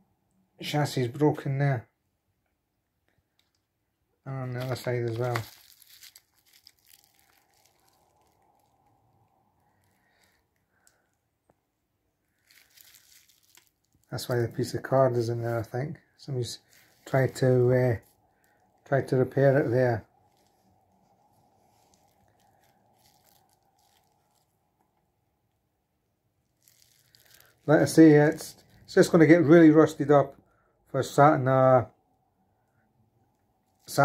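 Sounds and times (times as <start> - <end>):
faint plastic clicks: 2.4 - 3.7.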